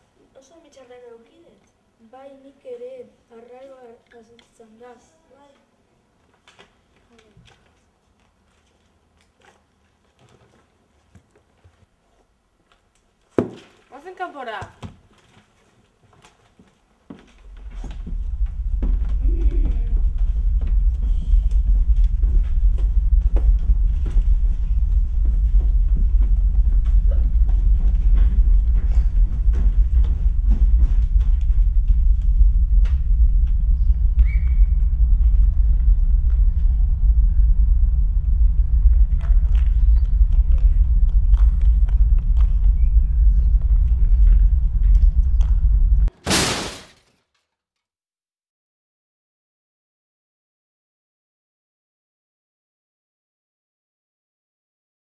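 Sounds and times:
low rumble: 17.4 - 46.1
burst of noise: 17.9 - 47.0.

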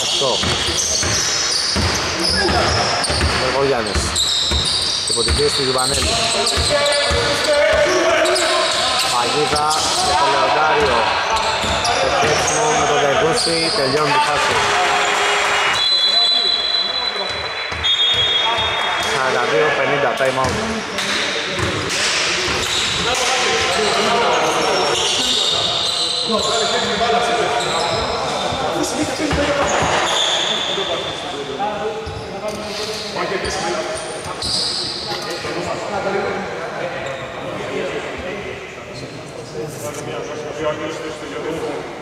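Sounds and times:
shoe squeaks: 0.0 - 14.3, 15.0 - 19.2, 22.5 - 31.2, 32.0 - 35.5
voices shouting in a hall: 0.0 - 32.5
basketball bouncing on court: 0.4 - 8.0, 20.4 - 20.8, 21.6 - 21.9.

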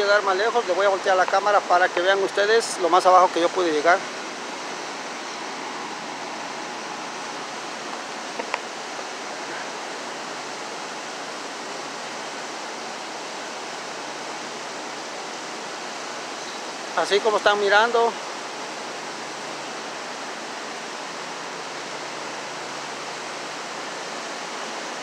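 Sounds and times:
whitewater rushing in rapids: 0.0 - 25.0.

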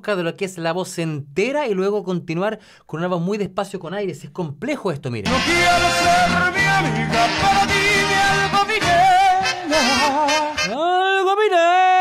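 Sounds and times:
band playing: 5.3 - 10.8
man singing with vibrato: 5.3 - 12.0.

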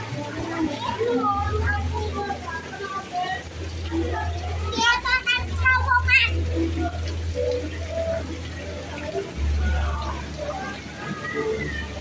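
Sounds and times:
children playing and calling out: 0.0 - 12.0
water pouring and splashing: 0.0 - 12.0.

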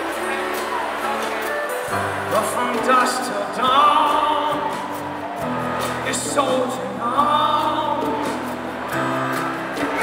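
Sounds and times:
acoustic guitar: 0.0 - 10.0
man singing into a microphone: 2.3 - 5.1, 5.8 - 8.6.

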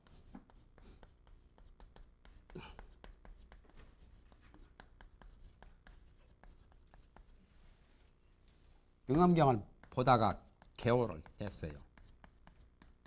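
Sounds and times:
chalk tapping on chalkboard: 0.0 - 7.4, 9.2 - 13.0.

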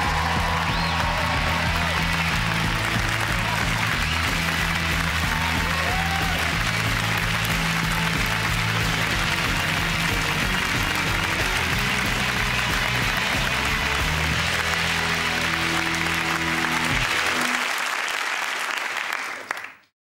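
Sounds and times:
theme music: 0.0 - 18.0
audience applauding: 0.0 - 19.9.

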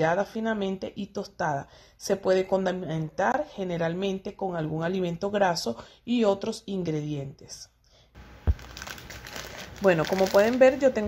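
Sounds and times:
plastic packet crinkling: 8.2 - 11.0.

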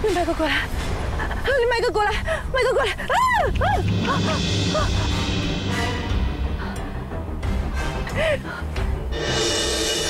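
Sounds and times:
tense background music: 0.1 - 10.0
low rumble: 3.4 - 7.8.

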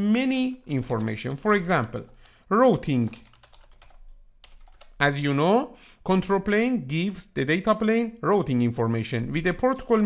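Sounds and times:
computer keyboard typing: 0.5 - 5.0.

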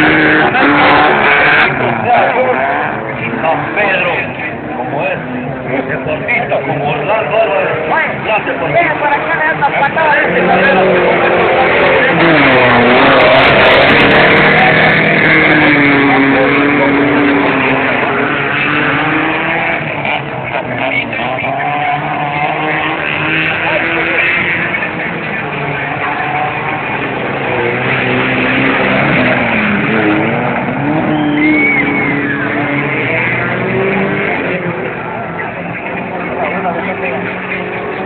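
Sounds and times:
engine revving: 0.0 - 38.0.

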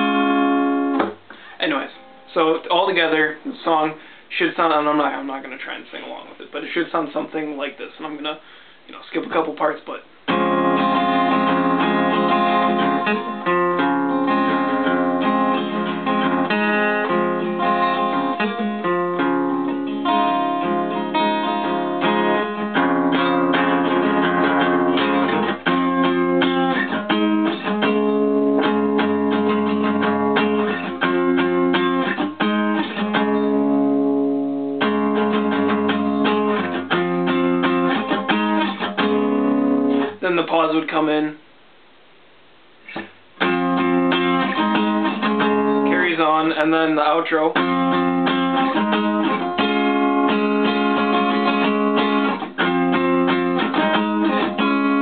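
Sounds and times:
acoustic guitar strumming: 0.0 - 4.2, 10.2 - 40.8, 42.8 - 55.0.

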